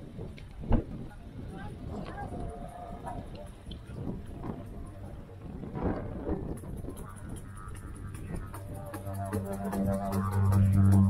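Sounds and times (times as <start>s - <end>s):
people talking nearby: 0.8s - 6.0s
didgeridoo drone: 2.4s - 11.0s.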